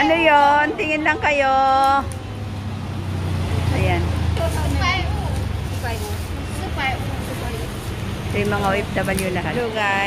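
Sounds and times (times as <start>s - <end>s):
motor vehicle rumbling: 0.0s - 10.0s.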